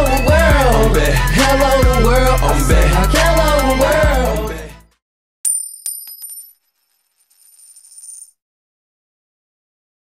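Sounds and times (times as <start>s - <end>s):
coin dropping and bouncing: 5.5s - 8.4s.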